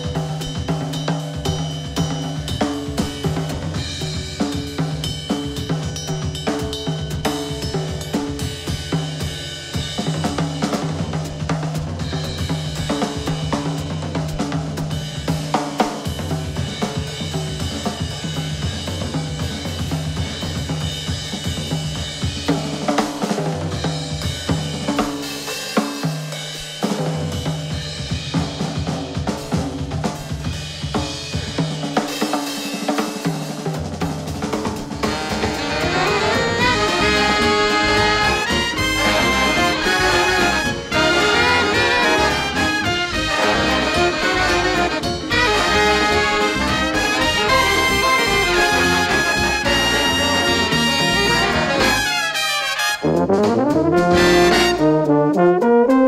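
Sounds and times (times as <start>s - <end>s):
big band jazz: 0.0s - 56.0s
drum kit playing busily: 0.0s - 56.0s
low bass notes: 35.0s - 52.0s.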